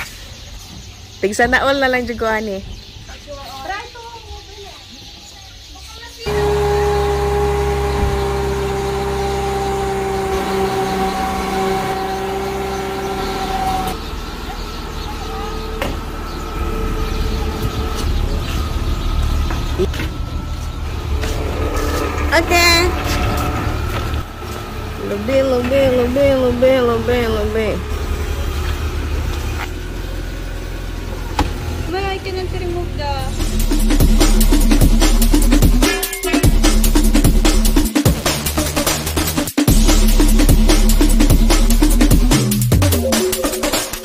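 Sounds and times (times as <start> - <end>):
voice: 1.2 - 4.9, 22.3 - 23.0, 25.0 - 28.6, 31.9 - 33.4
car engine idling: 6.1 - 44.0.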